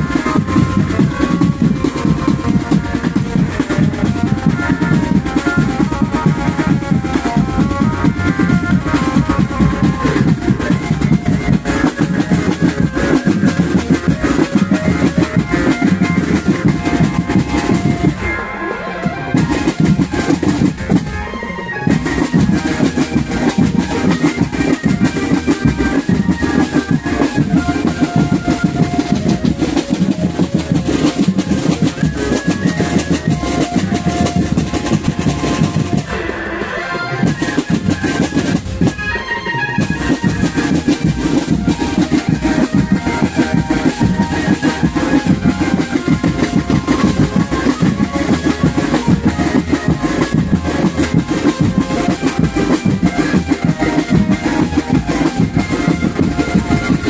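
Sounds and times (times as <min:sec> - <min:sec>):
snare and bass drums: 0:00.0 - 0:18.4, 0:19.0 - 0:21.2, 0:21.9 - 0:36.3, 0:37.2 - 0:39.1, 0:39.8 - 0:57.0
marching band melody: 0:00.0 - 0:57.0.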